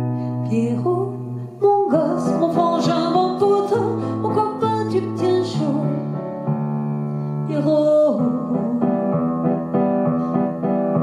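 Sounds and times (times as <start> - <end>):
piano keyboard playing chords: 0.0 - 11.0.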